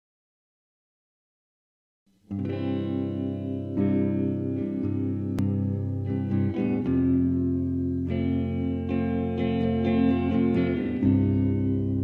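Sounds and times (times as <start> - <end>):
electric guitar chords: 2.2 - 12.0.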